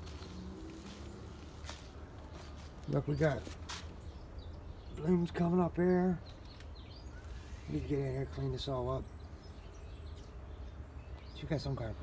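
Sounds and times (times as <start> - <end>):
footstep crunching on dry grass: 0.0 - 4.2.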